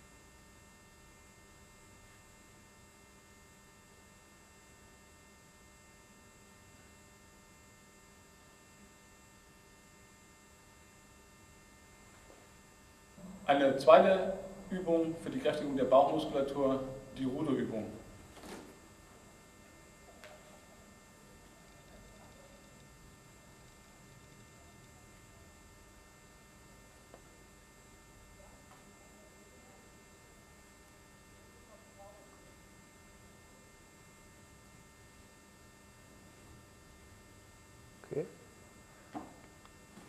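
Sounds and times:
faint electrical hum with hiss: 0.0 - 40.0.

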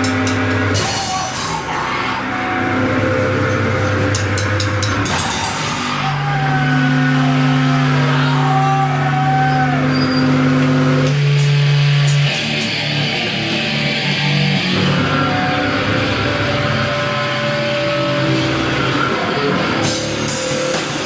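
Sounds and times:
guitar and bass amplifier drone: 0.0 - 21.0
cymbal and drum hits: 4.0 - 6.1.

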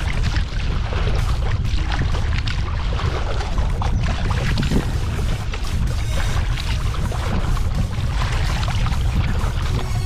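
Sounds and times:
water splashing at kayak bow: 0.0 - 10.0
wind buffeting microphone: 0.0 - 10.0.

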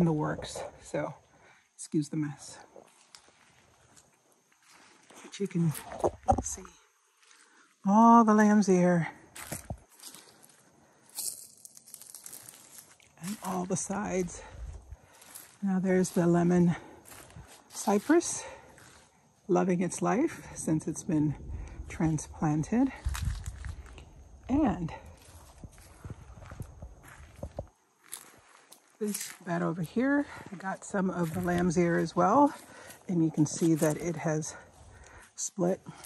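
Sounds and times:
footsteps on dry leaves: 2.8 - 6.3, 7.1 - 7.8, 9.3 - 19.3, 21.7 - 36.0
low microphone rumble: 13.8 - 15.4, 20.2 - 27.7.

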